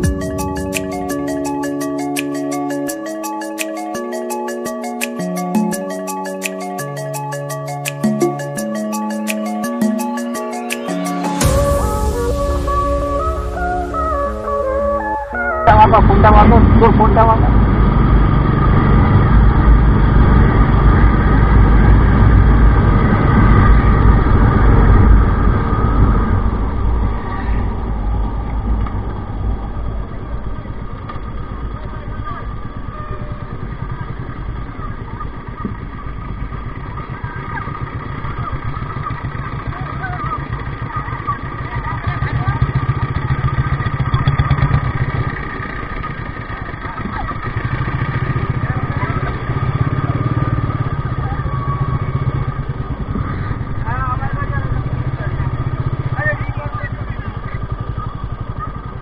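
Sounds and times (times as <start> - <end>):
motorcycle engine: 0.0 - 59.0.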